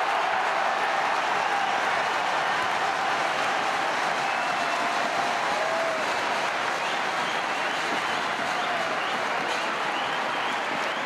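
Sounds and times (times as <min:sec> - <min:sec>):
stadium crowd cheering and clapping: 0:00.0 - 0:11.0.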